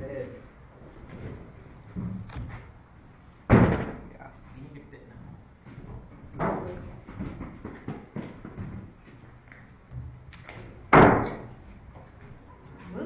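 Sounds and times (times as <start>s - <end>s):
knocks in hollow structure: 3.5s - 4.2s, 10.9s - 11.6s.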